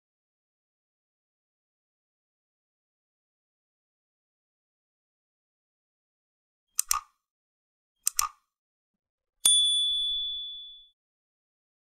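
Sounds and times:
bright bell ding: 0:09.5 - 0:11.0.

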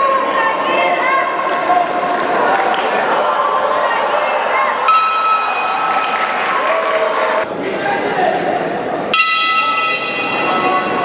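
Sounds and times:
arena crowd hubbub: 0:00.0 - 0:11.0
boxing ring bell: 0:09.2 - 0:11.0.

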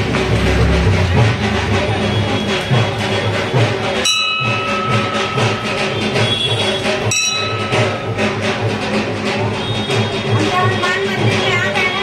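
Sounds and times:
temple bell ringing: 0:00.7 - 0:10.3.

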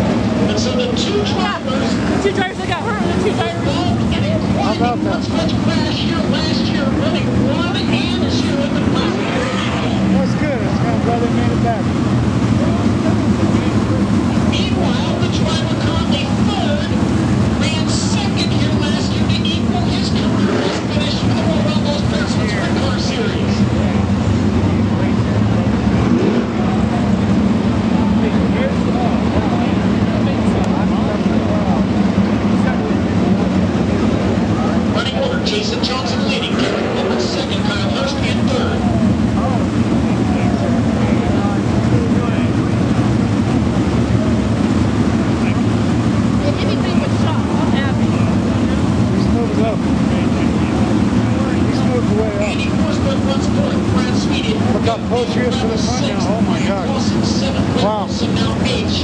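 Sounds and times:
race car engines idling: 0:00.0 - 0:59.0
spectators chattering: 0:00.0 - 0:59.0.

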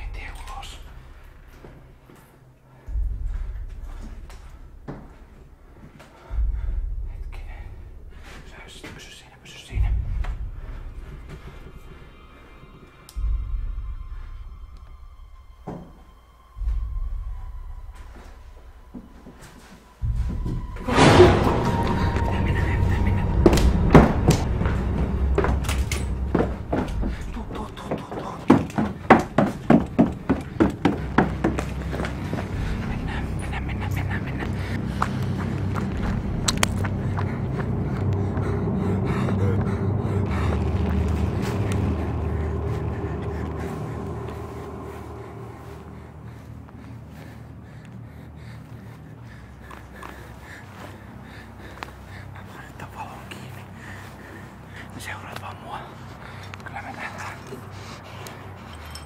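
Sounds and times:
hurried footsteps: 0:00.0 - 0:59.0.

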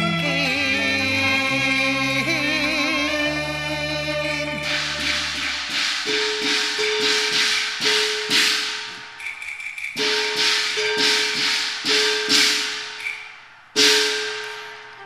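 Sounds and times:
cymbal crashes: 0:04.5 - 0:15.0.

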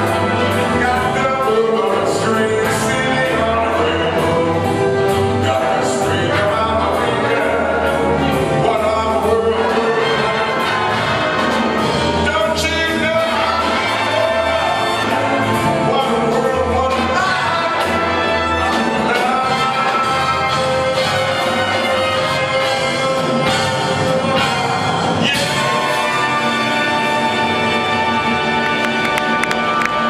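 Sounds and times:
jazz big band playing: 0:00.0 - 0:30.0.

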